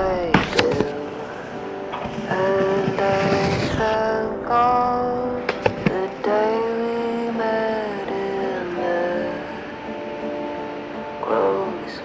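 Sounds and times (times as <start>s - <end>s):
snowboard scraping on snow: 0.0s - 9.6s
music soundtrack: 0.0s - 12.0s.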